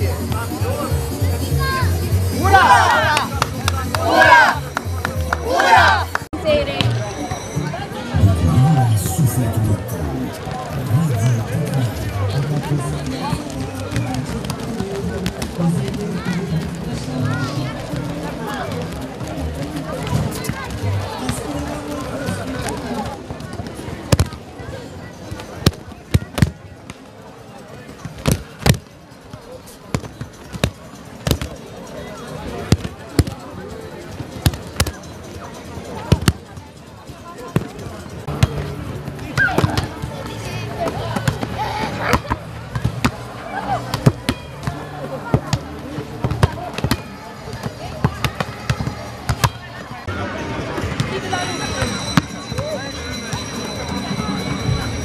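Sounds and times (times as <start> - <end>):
voices: 0.0 - 55.0.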